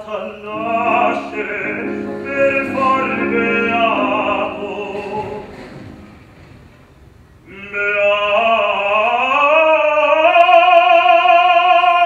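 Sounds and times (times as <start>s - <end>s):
male opera singer: 0.0s - 5.6s, 7.4s - 12.0s.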